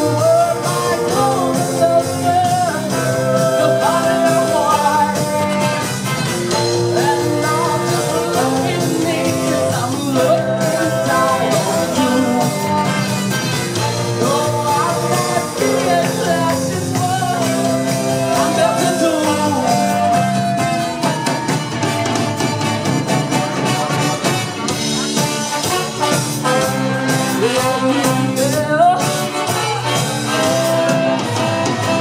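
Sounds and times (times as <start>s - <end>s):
voices singing: 0.0s - 22.2s
live soul band playing: 0.0s - 32.0s
steady bass line: 0.0s - 32.0s.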